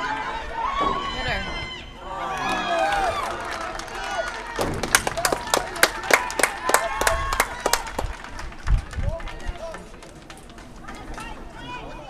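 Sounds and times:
hands clapping in rhythm: 3.3s - 10.7s
wind rumble on microphone: 6.9s - 9.9s.

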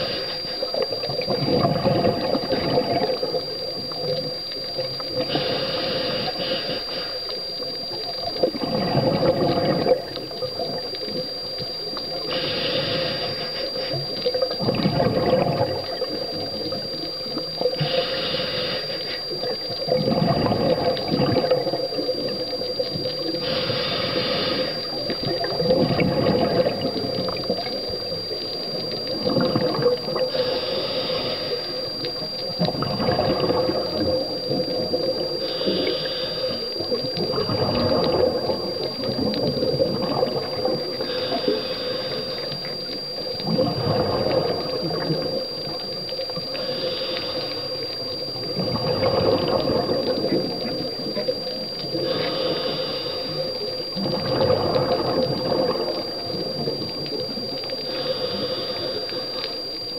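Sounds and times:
regulator inhale hiss: 0.0s - 1.3s, 2.1s - 8.6s, 9.7s - 14.6s, 15.3s - 20.0s, 20.6s - 32.5s, 33.2s - 43.4s, 44.3s - 48.6s, 49.8s - 54.0s, 55.9s - 59.9s
gurgling exhaled bubbles: 0.0s - 6.6s, 7.4s - 59.6s.

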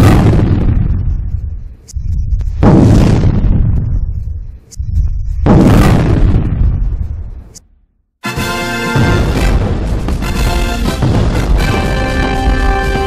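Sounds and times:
cinematic boom hits: 9.0s - 12.8s.

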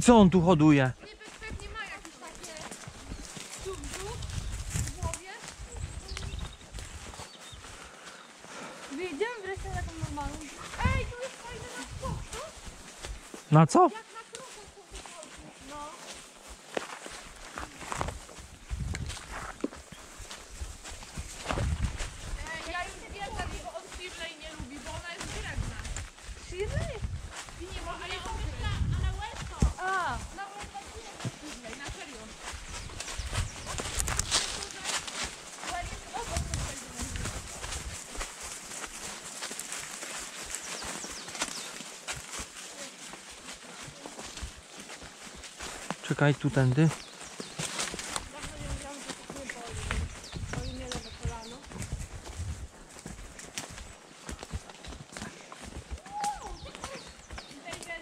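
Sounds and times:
horse hooves in dry leaves: 0.0s - 58.0s.

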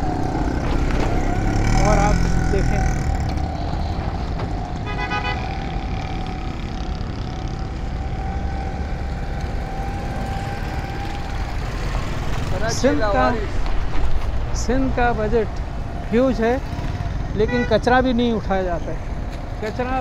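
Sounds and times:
traffic engine rumble: 0.0s - 20.0s
vehicle horn toot: 4.8s - 5.6s, 17.4s - 17.9s.

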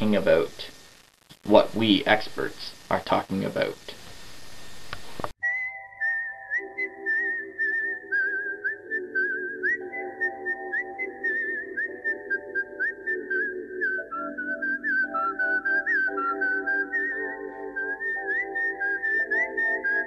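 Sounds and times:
whistled melody: 5.4s - 20.0s.

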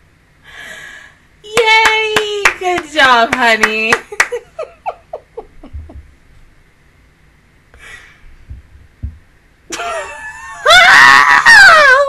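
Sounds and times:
hand claps: 1.6s - 4.4s
woman laughing shriek: 9.7s - 12.0s.

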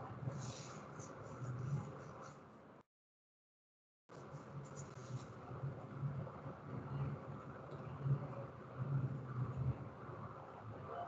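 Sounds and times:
faint room noise: 0.0s - 2.8s, 4.1s - 11.0s.

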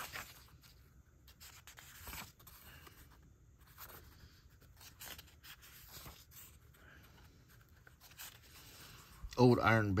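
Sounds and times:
paper pages rustling: 0.0s - 9.6s.

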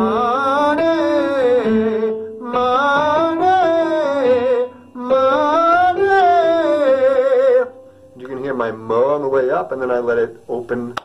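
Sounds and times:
man singing vocal exercise: 0.0s - 9.3s.

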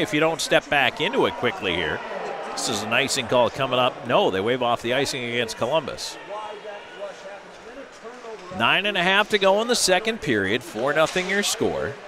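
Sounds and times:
ice rink ambience: 0.0s - 12.0s.

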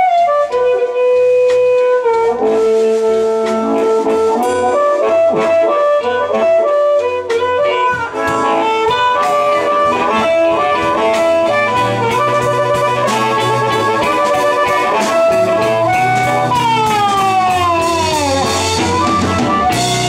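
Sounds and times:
amplified blues harmonica solo: 0.0s - 20.0s
bass guitar: 0.0s - 20.0s
drums: 0.0s - 20.0s
electric guitar: 0.0s - 20.0s.

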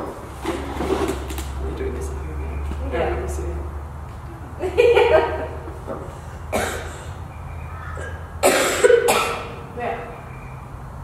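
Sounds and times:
woman coughing: 6.5s - 7.0s, 8.0s - 9.6s.

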